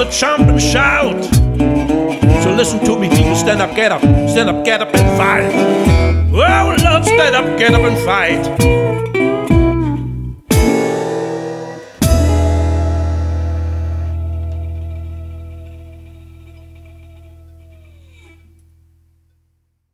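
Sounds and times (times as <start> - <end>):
blues band guitar chords: 0.0 - 18.0.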